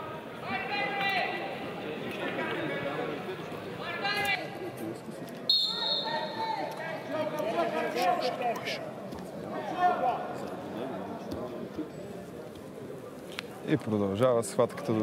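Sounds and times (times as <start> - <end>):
referee's whistle blast: 5.5 - 6.4.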